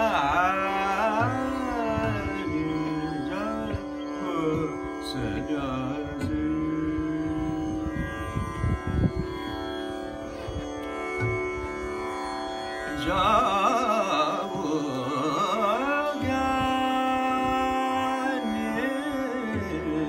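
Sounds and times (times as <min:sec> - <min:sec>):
man singing: 0:00.0 - 0:08.0, 0:12.9 - 0:20.0
tanpura drone: 0:00.0 - 0:20.0.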